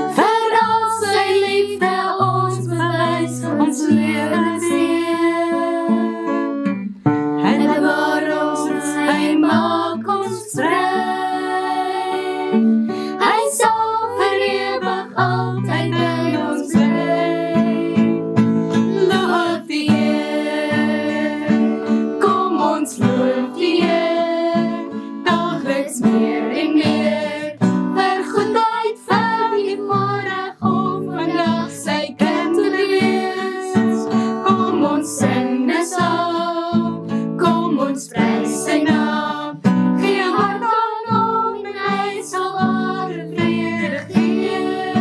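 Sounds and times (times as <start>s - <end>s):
woman and girls singing a hymn: 0.0s - 6.5s, 7.4s - 18.2s, 18.8s - 45.0s
strummed acoustic guitar: 0.0s - 45.0s.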